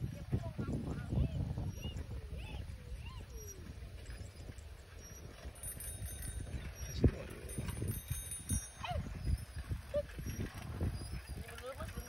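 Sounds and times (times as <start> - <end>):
bicycles rolling on concrete: 0.0 - 12.0
knocks and rattles of bicycles: 0.0 - 12.0.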